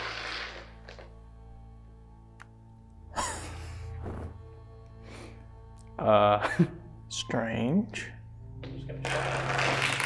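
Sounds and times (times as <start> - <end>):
low music drone: 0.0 - 10.0.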